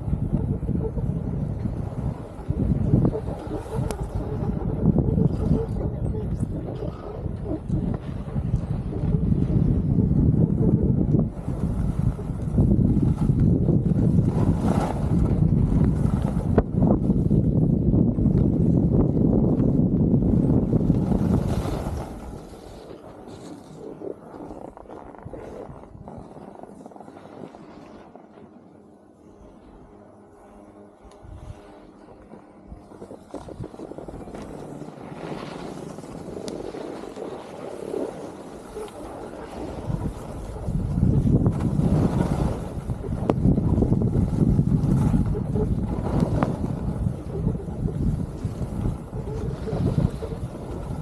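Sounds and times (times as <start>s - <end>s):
skis scraping over snow: 0.0s - 10.4s, 11.0s - 51.0s
wind buffeting microphone: 0.0s - 28.5s, 29.4s - 51.0s.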